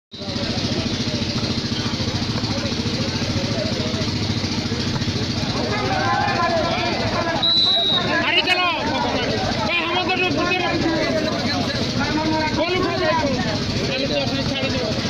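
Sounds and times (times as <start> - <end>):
crowd voices and shouts: 0.1 - 15.0
engine running steadily: 0.1 - 15.0
short high whistle blast: 7.4 - 8.2.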